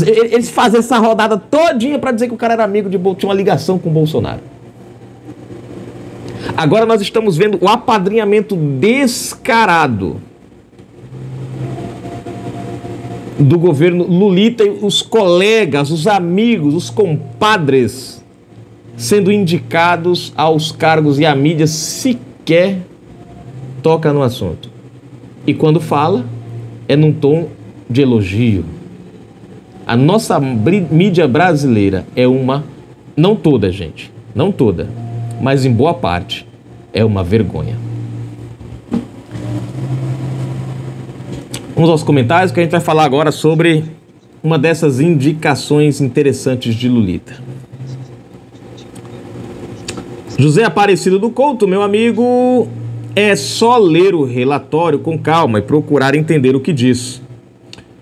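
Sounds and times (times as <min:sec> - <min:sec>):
man speaking: 0:00.0 - 0:04.5, 0:06.6 - 0:10.3, 0:13.4 - 0:18.2, 0:19.0 - 0:22.9, 0:23.8 - 0:24.8, 0:25.4 - 0:28.9, 0:29.8 - 0:37.9, 0:41.7 - 0:48.1, 0:50.3 - 0:57.3
low motor hum: 0:10.1 - 0:13.9, 0:14.7 - 0:45.0, 0:46.8 - 0:50.7, 0:51.6 - 0:56.4.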